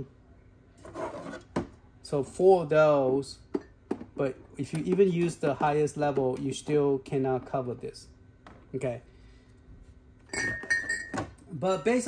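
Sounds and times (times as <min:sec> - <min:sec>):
glass bottles clinking: 0:10.3 - 0:11.4.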